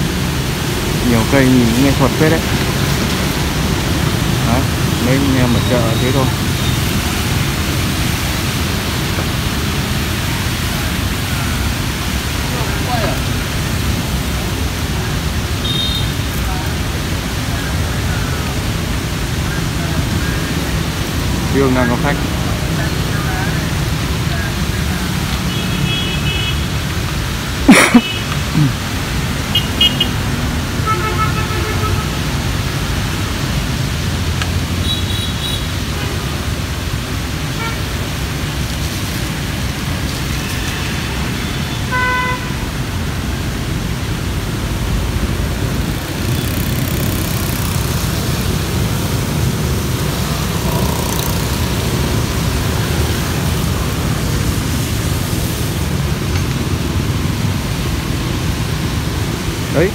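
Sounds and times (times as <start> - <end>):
traffic engine rumble: 0.0 - 59.9.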